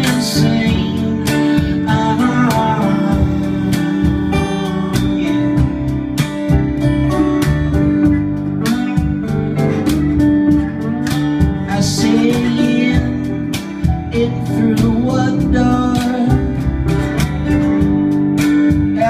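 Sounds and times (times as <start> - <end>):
acoustic guitar strumming: 0.0 - 19.0
lap slide guitar: 0.0 - 19.0.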